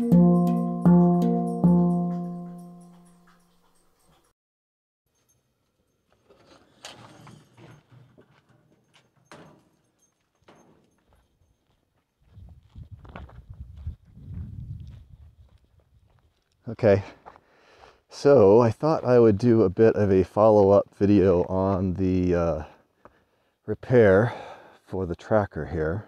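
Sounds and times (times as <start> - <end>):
plucked guitar chord: 0.0 - 3.0
footsteps: 6.1 - 17.9.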